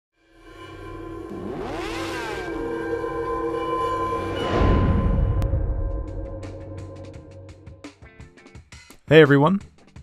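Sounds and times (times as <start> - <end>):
sustained music chord: 0.2 - 8.1.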